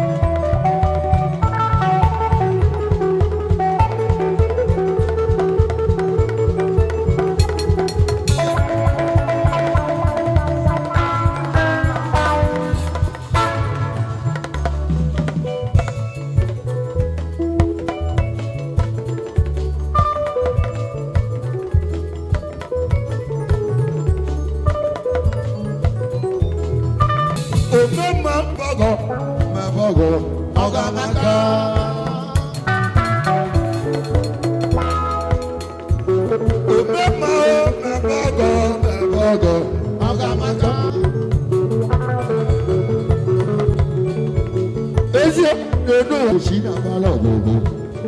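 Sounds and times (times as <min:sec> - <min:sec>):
instrumental band music: 0:00.0 - 0:48.0.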